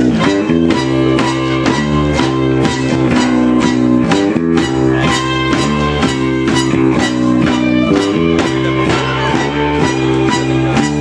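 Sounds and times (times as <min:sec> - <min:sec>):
band strumming guitar chords: 0:00.0 - 0:11.0.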